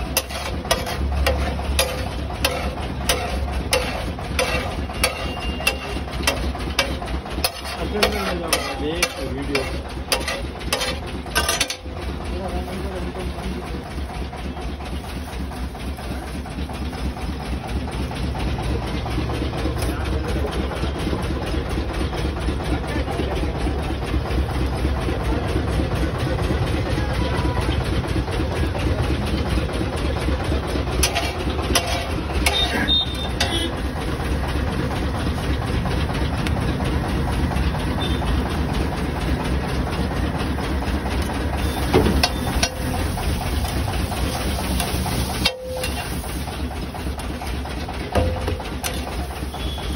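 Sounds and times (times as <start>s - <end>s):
spatula scraping griddle: 0.0s - 12.8s, 30.9s - 34.2s, 41.2s - 49.9s
gas burner roaring: 0.0s - 49.9s.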